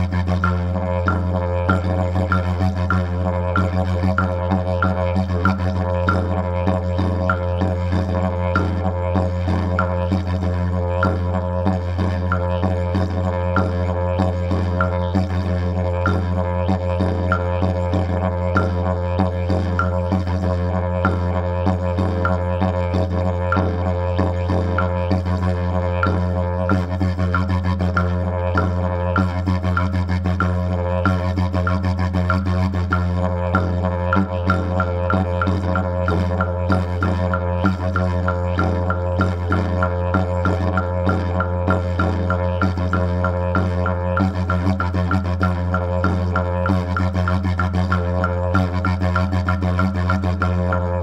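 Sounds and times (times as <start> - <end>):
didgeridoo drone: 0.0 - 51.0.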